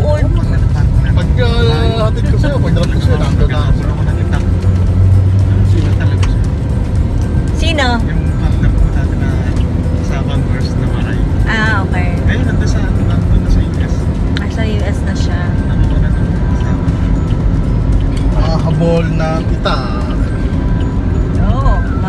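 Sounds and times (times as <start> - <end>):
car cabin rumble while driving: 0.0 - 22.0
music: 0.0 - 22.0.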